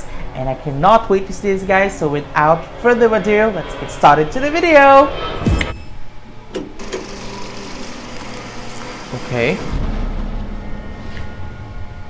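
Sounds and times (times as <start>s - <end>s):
projector whirring with low hum: 5.7s - 12.0s.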